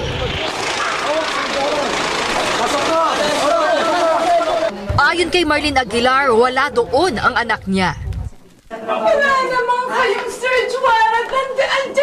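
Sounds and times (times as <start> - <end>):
indistinct voices: 0.0 - 12.0
steady background noise: 0.0 - 12.0.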